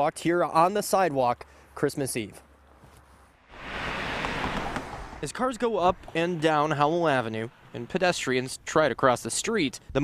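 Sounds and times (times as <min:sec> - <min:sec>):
car tyre and road noise: 0:02.5 - 0:09.1.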